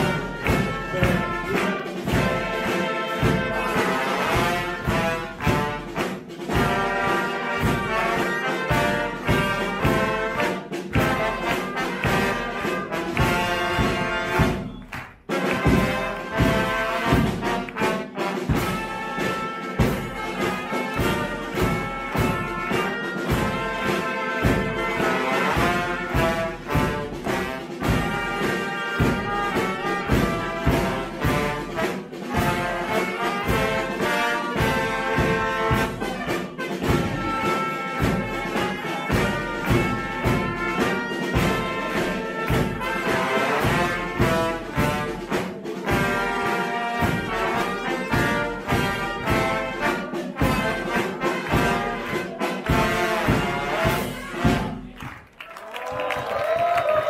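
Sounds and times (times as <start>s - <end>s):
bass drum and snare beat: 0.0s - 55.2s
brass band playing: 0.0s - 55.2s.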